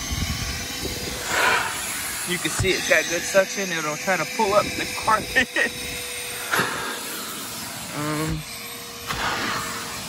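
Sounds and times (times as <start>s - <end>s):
faint motor tone: 0.0s - 10.0s
vacuum nozzle hissing on carpet: 0.0s - 10.0s.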